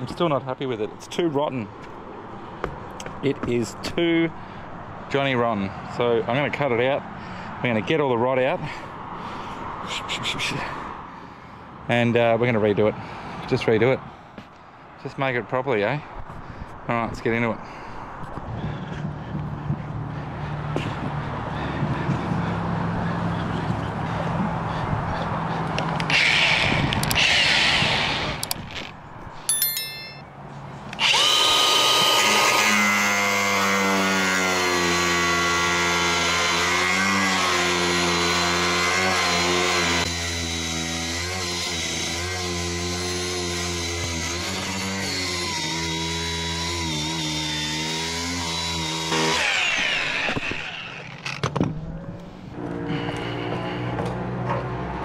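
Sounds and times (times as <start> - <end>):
angle grinder cutting fibreglass: 31.0 - 51.4.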